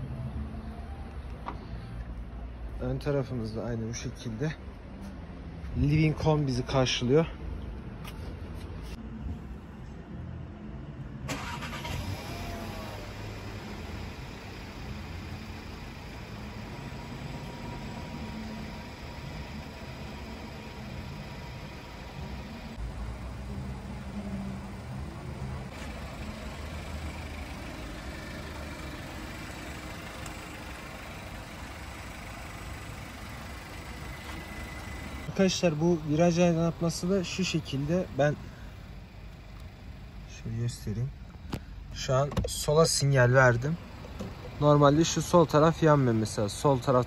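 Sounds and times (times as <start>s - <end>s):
car engine idling: 11.3s - 47.0s.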